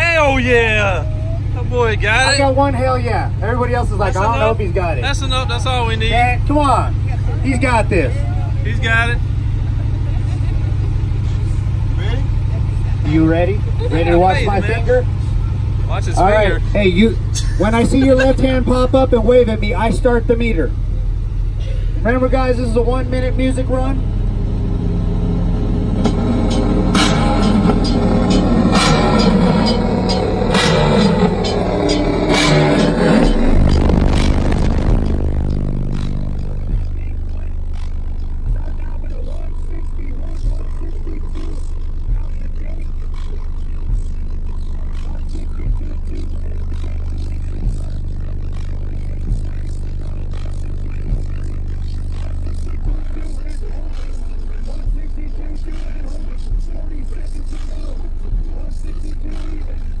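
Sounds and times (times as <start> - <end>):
bass music from subwoofers: 0.0 - 60.0
deep steady bass note with thumps: 0.0 - 60.0.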